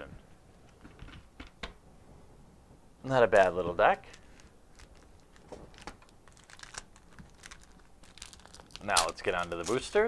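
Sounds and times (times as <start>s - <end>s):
foil wrapper crinkling: 3.3s - 10.0s.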